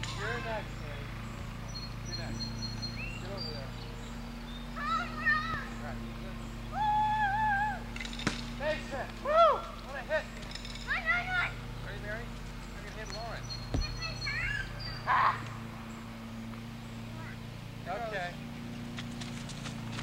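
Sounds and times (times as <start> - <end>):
steady low hum: 0.0 - 20.0
children calling and shouting: 2.0 - 8.0, 8.7 - 18.4
sharp knocks: 13.7 - 14.2.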